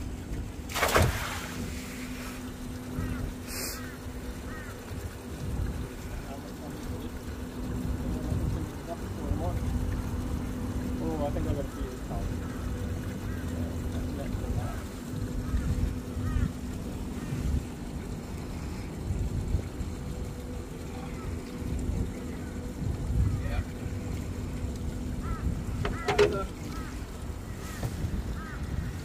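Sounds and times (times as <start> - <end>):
steady low hum: 0.0 - 29.0
wind buffeting microphone: 4.8 - 29.0.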